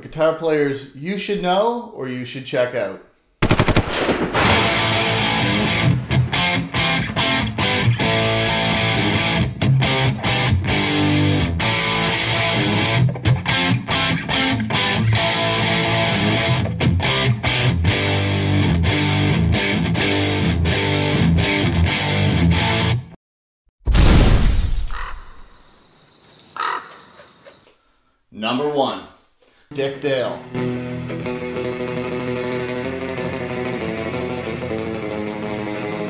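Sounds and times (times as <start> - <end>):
distorted electric guitar riff: 4.4 - 23.1, 30.4 - 36.0.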